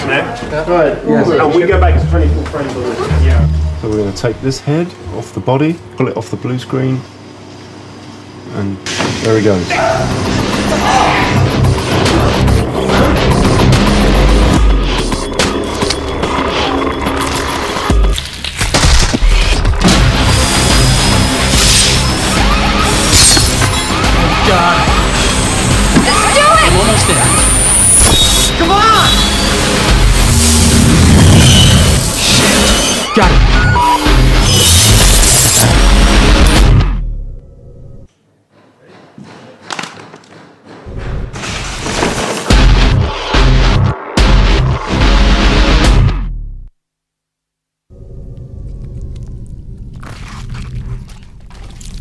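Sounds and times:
film soundtrack music: 1.6s - 4.6s, 19.6s - 34.8s
loud deep hit: 1.7s - 4.4s
sharp sound effect hits: 1.7s - 4.4s.

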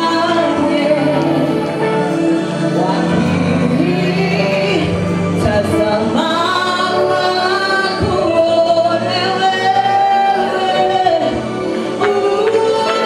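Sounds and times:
band of keyboards and drums: 0.0s - 13.0s
woman singing gospel song: 0.0s - 13.0s.

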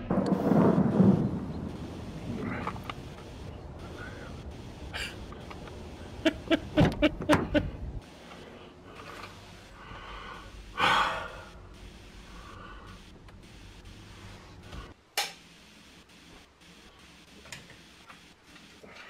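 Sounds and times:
person gasping: 3.8s - 5.2s, 9.7s - 11.6s.

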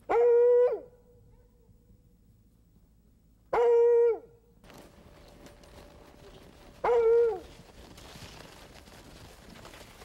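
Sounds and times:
dog howling: 6.8s - 7.4s.

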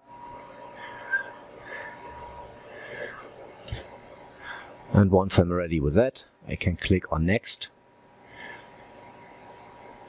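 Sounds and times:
thin steady tone: 0.0s - 3.5s.

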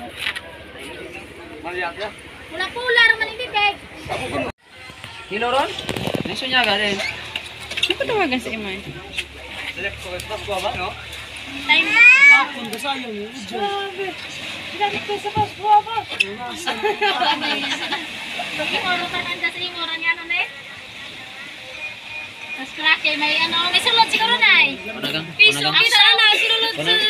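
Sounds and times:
people talking and calling out: 0.0s - 27.0s.

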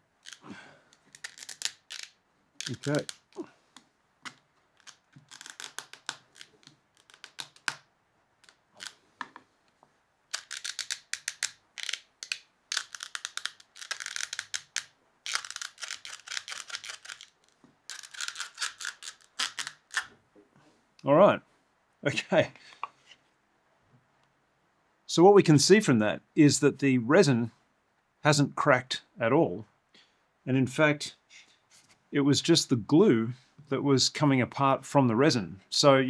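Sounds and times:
glued joint cracking apart: 0.2s - 9.4s, 10.3s - 20.2s.

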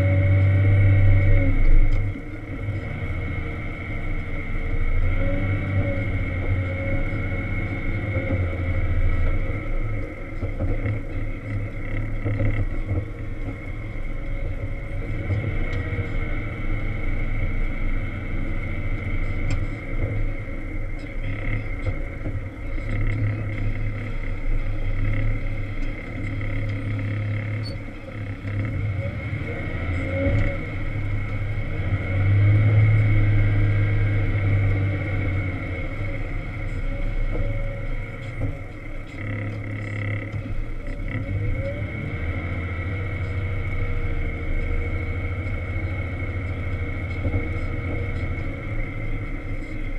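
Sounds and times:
diesel engine working: 0.0s - 49.9s
high whine: 0.0s - 49.9s.

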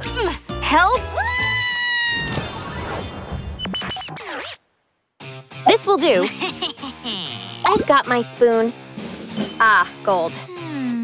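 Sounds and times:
background music: 0.0s - 1.8s, 5.2s - 11.0s
woman screaming: 1.0s - 2.3s.

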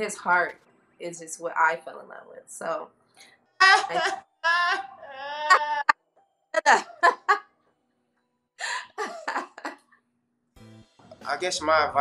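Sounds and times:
person laughing: 3.6s - 5.9s, 6.6s - 7.4s, 8.6s - 9.8s.

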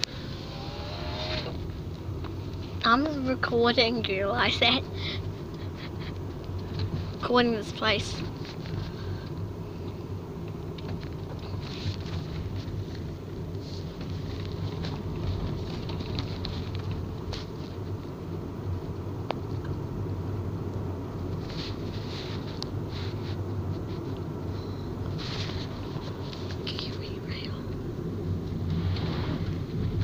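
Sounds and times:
vehicle cabin rumble and hum: 0.0s - 30.0s
faint clicks and rattles: 8.0s - 18.2s.

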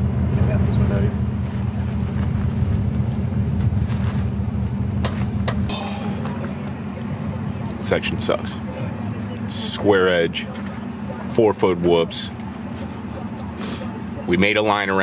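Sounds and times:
low engine rumble: 0.0s - 15.0s
faint voices: 5.7s - 15.0s.

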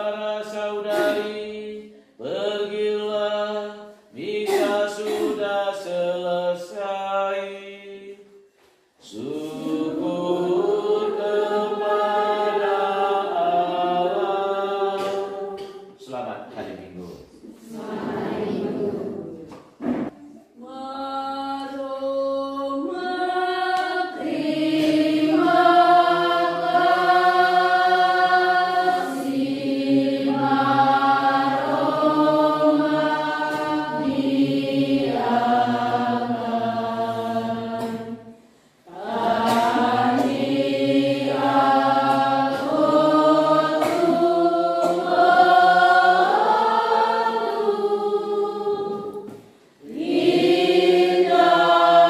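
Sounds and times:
congregation singing a hymn: 0.0s - 16.6s, 17.5s - 52.0s.

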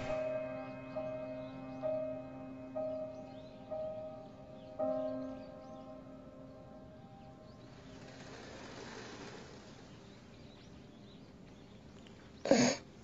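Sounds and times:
bell-like chord ringing: 0.0s - 8.1s
soft hiss: 7.0s - 12.3s.

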